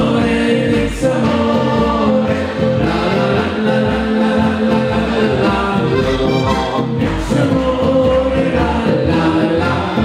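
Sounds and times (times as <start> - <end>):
double bass: 0.0 - 10.0
people singing together: 0.0 - 10.0
button accordion: 5.8 - 7.2.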